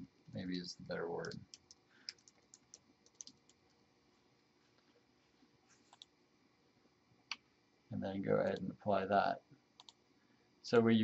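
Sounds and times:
faint keyboard keystrokes: 1.2s - 3.8s
faint mouse clicks: 1.2s - 3.8s, 5.9s - 6.2s, 9.8s - 10.0s.

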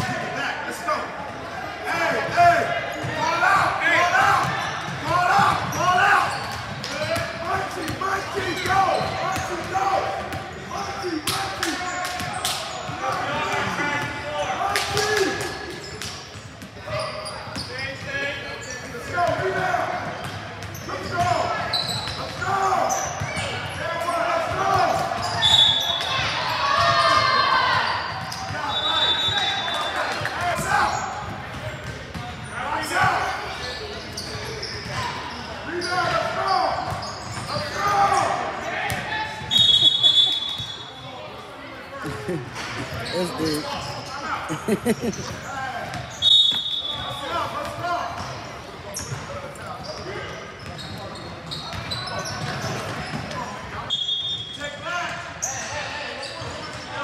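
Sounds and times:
people talking and calling out: 32.4s - 50.9s.

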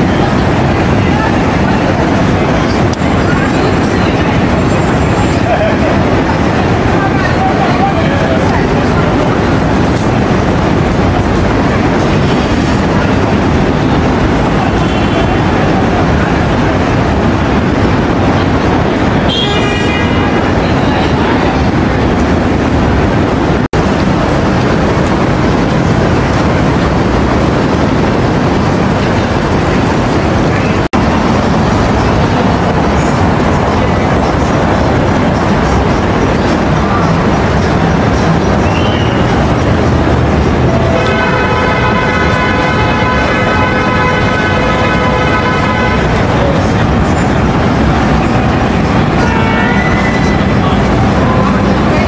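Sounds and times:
city traffic noise: 0.0s - 52.0s
horn-like pitched sound: 40.7s - 46.8s, 48.8s - 51.5s.

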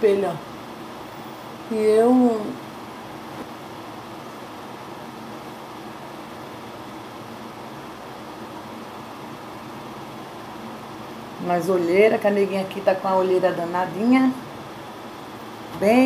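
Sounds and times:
electric fan whirring: 0.0s - 16.0s.

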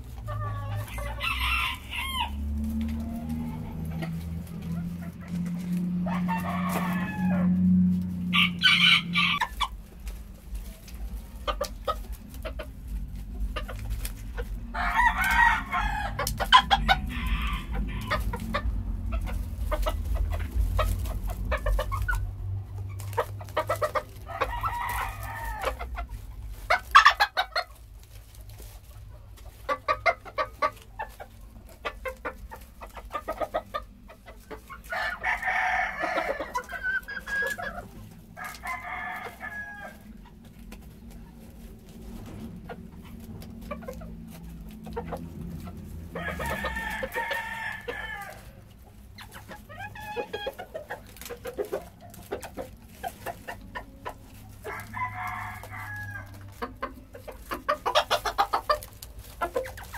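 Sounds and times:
chicken clucking: 0.0s - 59.9s
roosters crowing: 0.0s - 59.9s.

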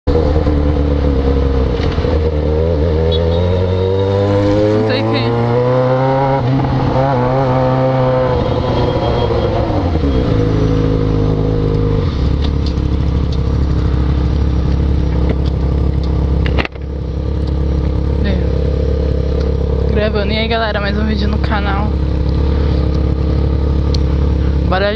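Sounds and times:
motorcycle engine revving: 0.0s - 24.9s.

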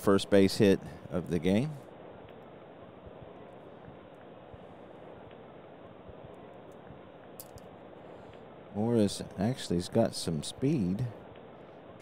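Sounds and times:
steady low hiss: 0.0s - 12.0s.

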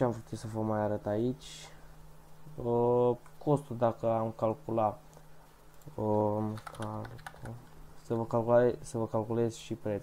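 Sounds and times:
keyboard keystrokes: 6.5s - 7.6s.

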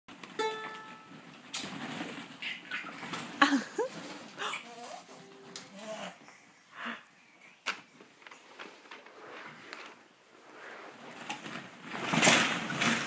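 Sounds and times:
ukulele note plucked: 0.3s - 1.1s
plastic balls rustling: 1.0s - 5.9s, 8.0s - 13.0s.

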